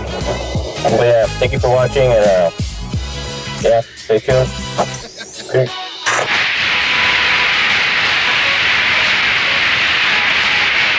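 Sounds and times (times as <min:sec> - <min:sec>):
tv static hiss: 0:00.0 - 0:10.9.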